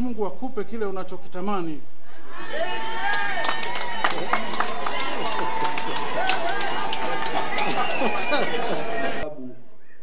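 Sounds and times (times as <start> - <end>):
crowd voices overlapping: 2.1 - 9.6
sharp claps or knocks: 3.1 - 8.8.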